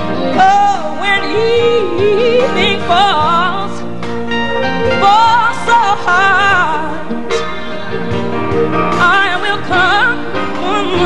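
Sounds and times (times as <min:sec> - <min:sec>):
woman singing gospel with vibrato: 0:00.0 - 0:04.1, 0:04.7 - 0:07.6, 0:08.8 - 0:11.0.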